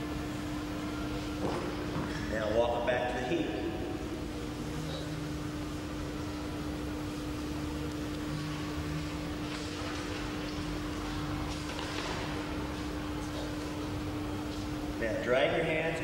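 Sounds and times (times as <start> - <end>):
steady hum: 0.0 - 16.0.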